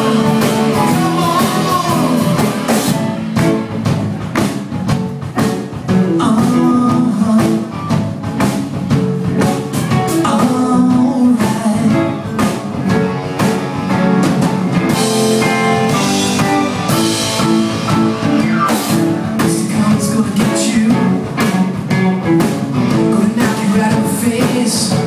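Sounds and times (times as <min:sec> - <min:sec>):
drum kit beat: 0:00.0 - 0:25.0
electric guitars: 0:00.0 - 0:25.0.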